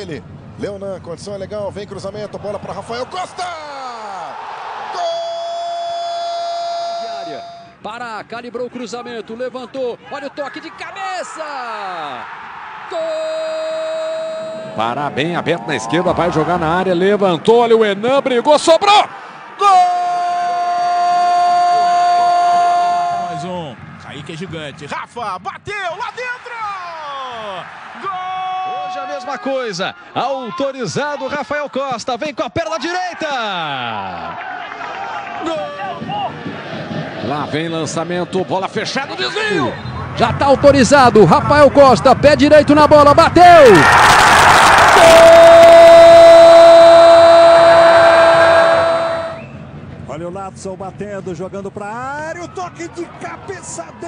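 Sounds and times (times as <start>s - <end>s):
stadium crowd roaring: 2.3s - 7.8s, 10.0s - 24.9s, 25.8s - 31.8s, 32.7s - 49.7s, 52.4s - 54.0s
commentator shouting goal: 5.0s - 7.6s, 45.0s - 49.4s.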